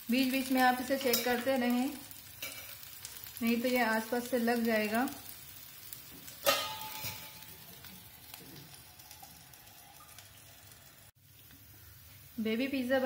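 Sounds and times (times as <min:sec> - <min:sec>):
oil sizzling on a hot pan: 0:00.0 - 0:13.0.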